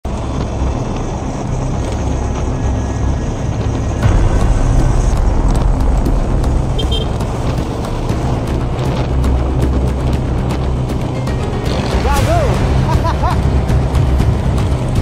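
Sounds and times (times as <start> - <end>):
scooter engine: 0.1 - 15.0
music playing: 3.5 - 15.0.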